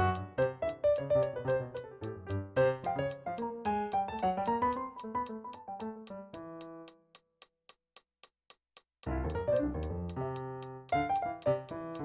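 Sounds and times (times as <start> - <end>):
faint metronome clicking: 0.0 - 12.0.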